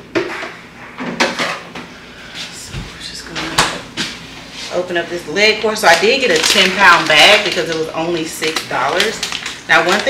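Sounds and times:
containers rattling: 5.8s - 10.0s.

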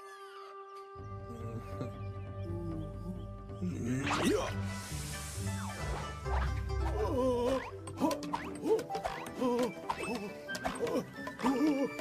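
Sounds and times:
cartoon music: 5.6s - 12.0s.

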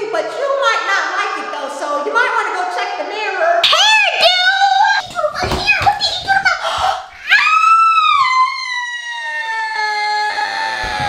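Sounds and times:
woman screaming: 3.6s - 5.0s, 6.6s - 11.0s.

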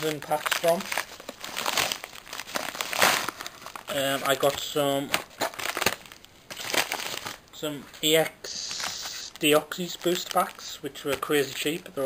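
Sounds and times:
padded paper envelope crinkling: 0.0s - 7.4s, 8.6s - 11.9s.

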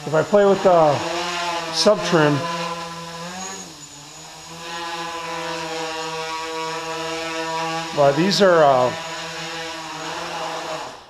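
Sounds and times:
quadcopter motors humming: 0.0s - 11.0s.

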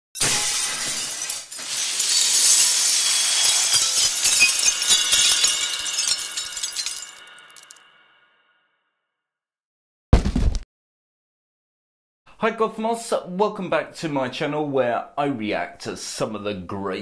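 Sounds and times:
glass shattering: 0.2s - 8.1s
shards tinkling: 0.2s - 8.1s.

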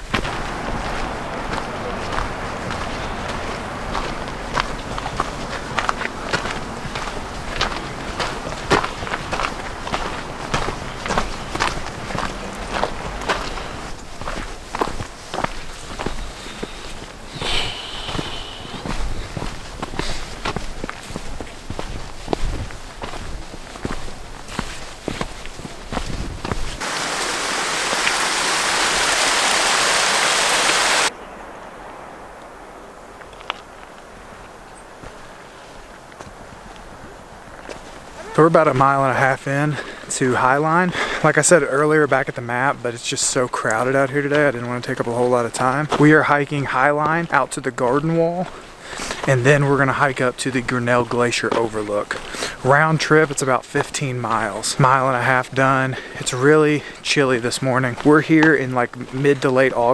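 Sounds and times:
footsteps on gravel trail: 0.0s - 29.2s, 32.3s - 59.9s
loud rushing hiss: 17.2s - 19.4s.

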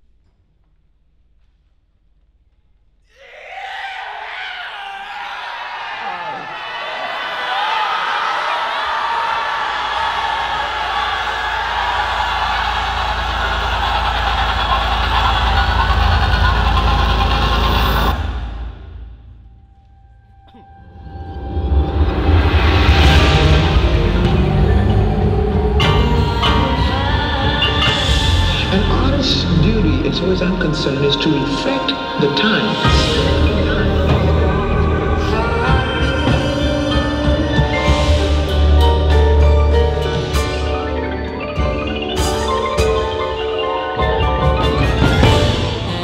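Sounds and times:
electronic ensemble music: 8.7s - 19.0s, 20.5s - 46.0s
low rumble: 11.0s - 31.8s
dense overlapping voices: 26.1s - 37.0s.

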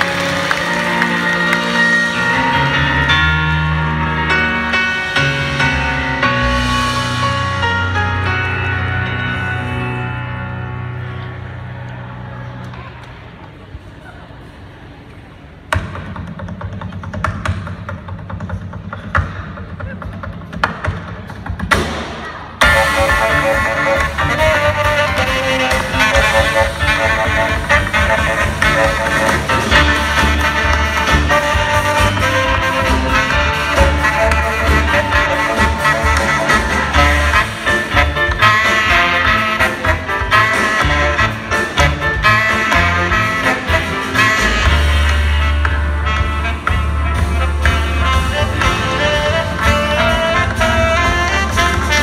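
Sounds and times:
live band music: 0.0s - 14.0s, 15.6s - 52.0s
piano: 0.0s - 19.9s, 20.5s - 52.0s
drums: 0.0s - 52.0s.

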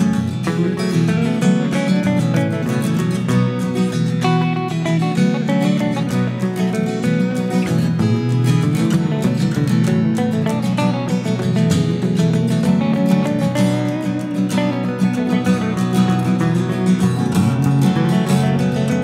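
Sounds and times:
electric guitar picked: 0.0s - 19.0s
strummed acoustic guitar: 0.0s - 19.0s.

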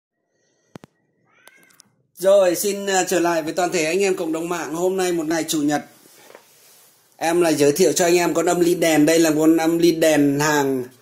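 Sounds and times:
faint animal-like cry: 1.2s - 2.0s.

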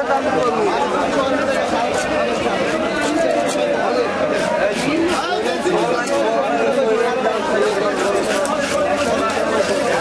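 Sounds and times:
crowd chatter: 0.0s - 10.0s
knife scraping fish scales: 1.4s - 6.4s, 7.4s - 10.0s.

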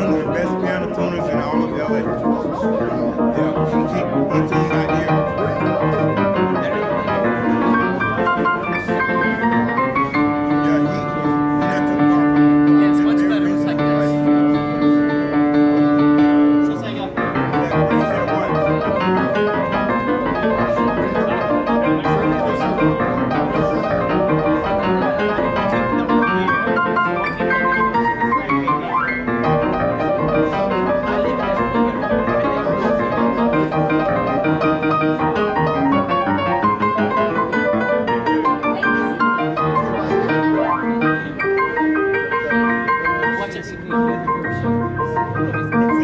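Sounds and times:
grand piano chords and runs: 0.0s - 46.0s.

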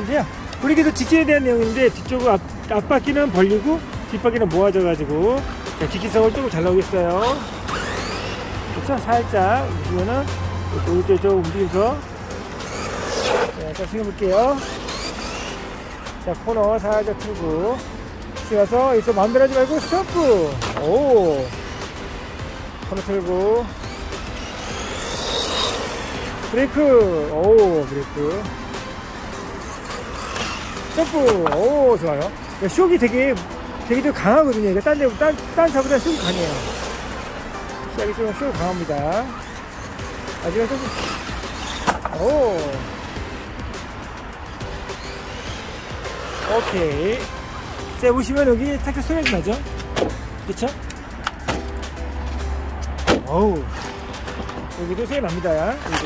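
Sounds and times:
background music: 0.0s - 56.0s
toy car electric motor whine: 2.9s - 4.4s, 5.4s - 17.7s, 18.4s - 33.3s, 33.9s - 43.4s, 44.6s - 49.2s.

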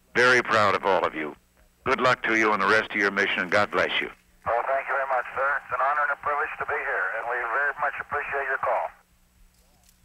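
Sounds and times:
steady low hum: 0.0s - 10.0s
man talking over radio: 0.2s - 9.0s.

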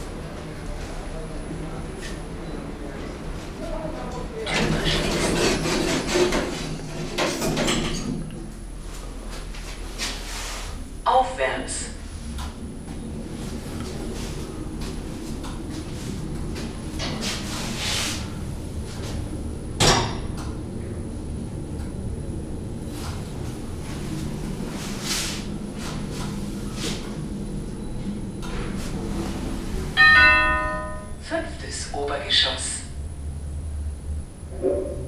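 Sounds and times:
elevator running hum: 0.0s - 35.0s
elevator bell chime: 30.0s - 31.4s.

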